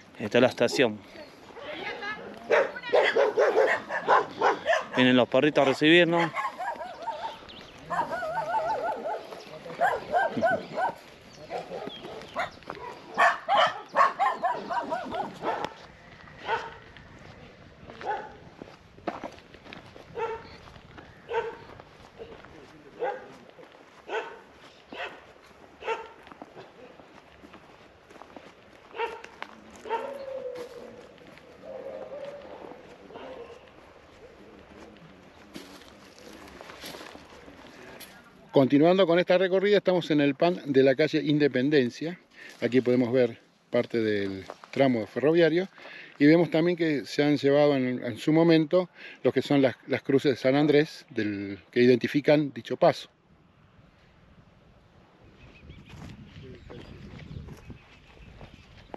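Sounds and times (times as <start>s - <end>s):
dogs barking and yipping: 0.6s - 16.9s, 18.0s - 18.5s, 20.1s - 27.0s, 28.8s - 34.4s.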